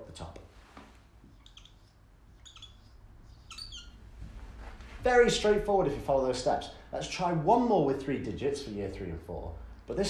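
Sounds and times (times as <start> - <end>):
marker squeaking on whiteboard: 0.8 - 4.1.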